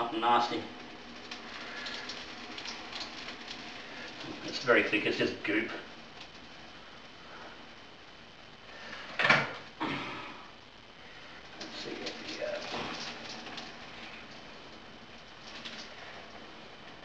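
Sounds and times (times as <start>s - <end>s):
water pouring into a pot: 1.1s - 4.9s, 11.5s - 14.7s.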